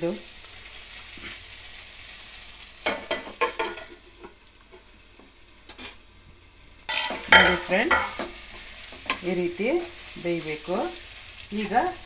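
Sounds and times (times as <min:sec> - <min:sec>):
masala sizzling in a pan: 0:00.0 - 0:12.0
spatula scraping a pan: 0:06.9 - 0:09.2.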